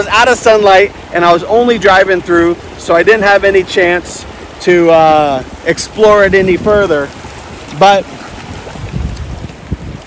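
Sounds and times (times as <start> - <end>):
faint steady hiss: 0.0 - 10.0
wind buffeting microphone: 0.0 - 10.0.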